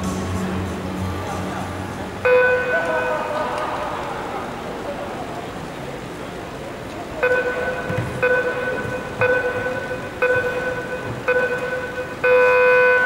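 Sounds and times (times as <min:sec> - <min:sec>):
long start beep: 0:07.2 - 0:13.0
short countdown beeps: 0:07.2 - 0:13.0.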